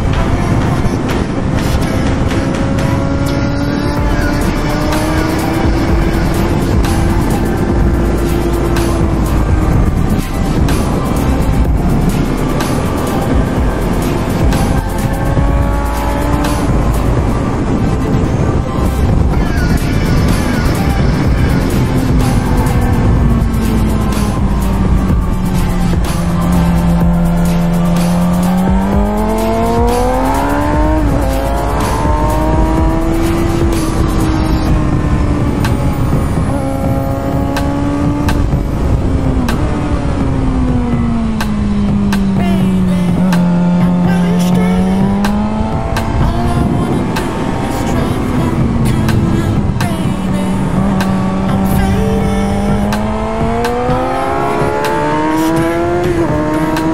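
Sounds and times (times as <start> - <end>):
motorcycle engine revving: 0.0 - 56.9
wind rush on microphone: 0.0 - 56.9.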